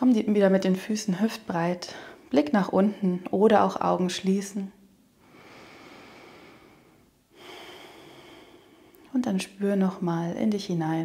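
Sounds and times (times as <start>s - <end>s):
woman breathing slowly: 1.8s - 2.3s, 5.2s - 9.1s.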